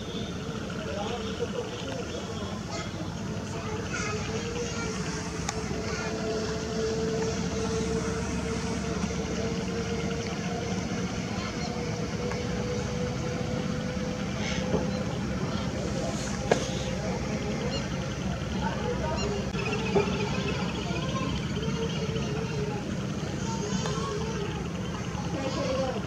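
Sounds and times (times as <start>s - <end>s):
engine humming: 0.0s - 26.0s.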